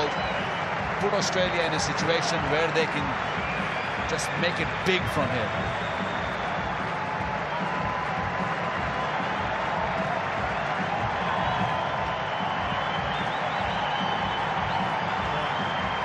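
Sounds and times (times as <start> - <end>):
stadium crowd applauding and cheering: 0.0 - 16.0.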